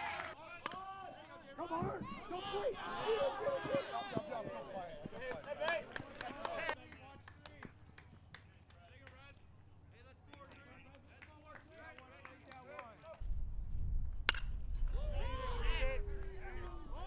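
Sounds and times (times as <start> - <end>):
people shouting and cheering: 0.0 - 6.8, 14.9 - 17.0.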